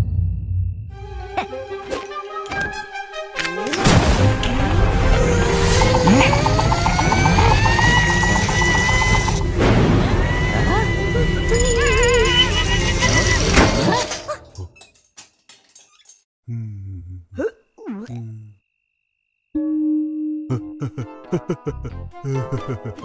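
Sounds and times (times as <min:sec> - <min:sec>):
cartoon music with sound effects: 0:01.0 - 0:13.9.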